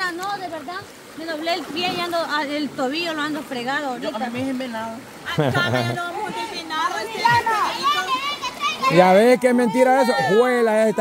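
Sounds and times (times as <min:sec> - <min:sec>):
faint rush of river water: 0:00.0 - 0:11.0.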